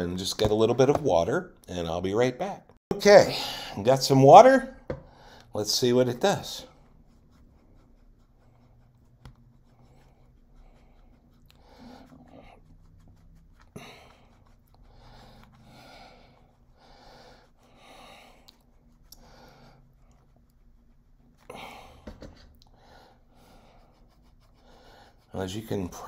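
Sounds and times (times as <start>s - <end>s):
quiet breathing: 5.0s - 5.6s, 9.6s - 12.9s, 13.6s - 20.7s, 21.3s - 25.4s.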